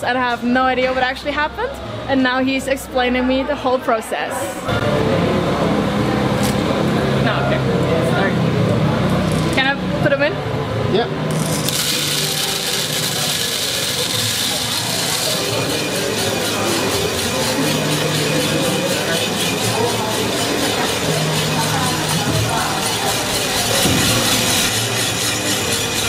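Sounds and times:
coffee roaster whirring: 0:11.2 - 0:26.0
coffee beans poured into hopper: 0:11.3 - 0:22.2
beans rattling in drum: 0:11.3 - 0:26.0.

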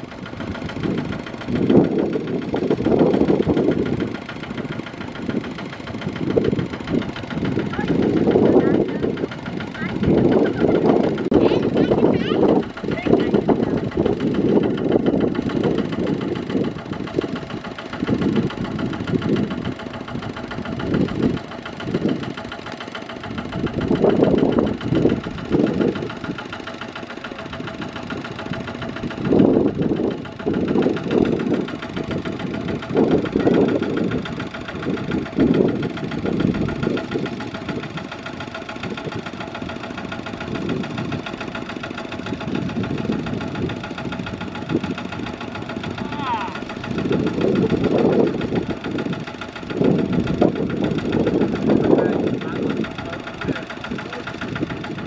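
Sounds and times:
diesel tractor engine knocking: 0:00.0 - 0:55.0.

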